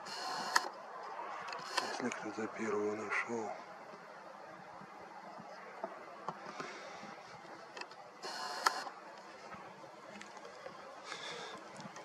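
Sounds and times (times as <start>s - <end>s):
camera zoom motor whirring: 0.0s - 0.7s, 1.6s - 2.0s, 8.2s - 8.9s.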